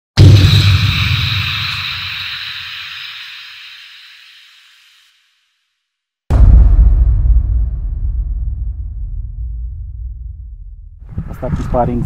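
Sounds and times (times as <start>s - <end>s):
hiss: 0.4s - 5.5s
low rumble: 6.3s - 11.4s.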